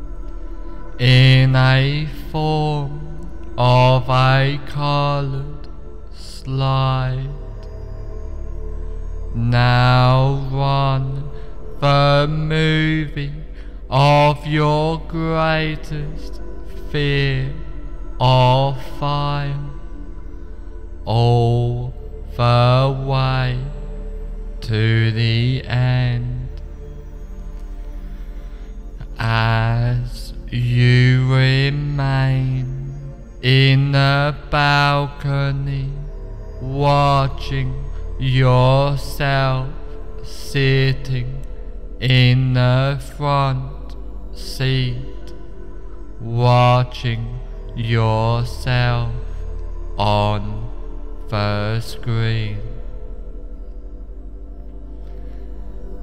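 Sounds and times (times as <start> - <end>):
low hum: 0.0 - 56.0
man chanting: 0.0 - 56.0.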